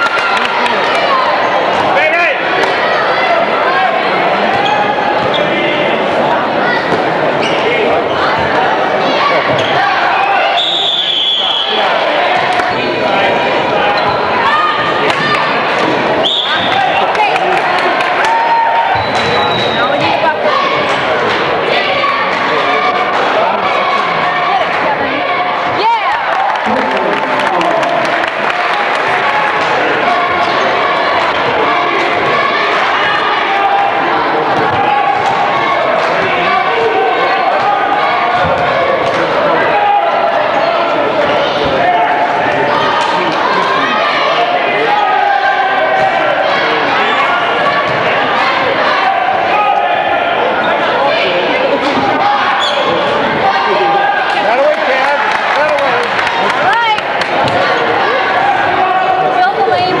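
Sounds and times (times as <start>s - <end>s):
crowd chatter: 0.0s - 60.0s.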